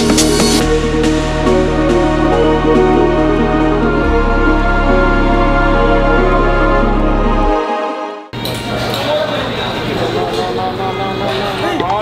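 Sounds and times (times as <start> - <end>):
background music: 0.0 - 8.6.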